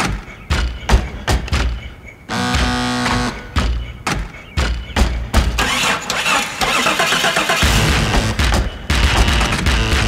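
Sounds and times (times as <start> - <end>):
engine cranking and starting: 5.6 - 8.4
heavy pulsing bass beat: 7.7 - 10.0.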